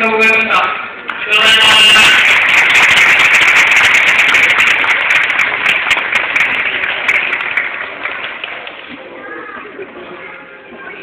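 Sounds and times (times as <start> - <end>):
audience applauding: 1.4 - 8.9.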